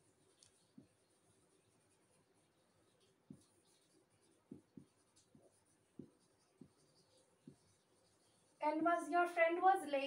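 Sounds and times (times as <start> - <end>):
marker writing on whiteboard: 0.0 - 9.8.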